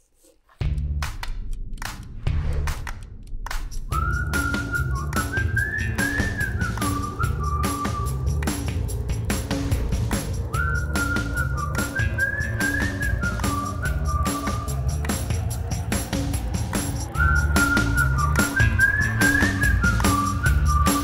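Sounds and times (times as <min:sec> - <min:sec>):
whistled melody over beat: 0:03.7 - 0:21.0.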